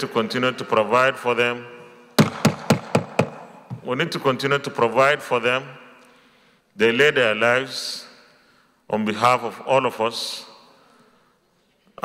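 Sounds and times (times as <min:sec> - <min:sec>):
wooden gavel knocking on desk: 0:02.2 - 0:03.8.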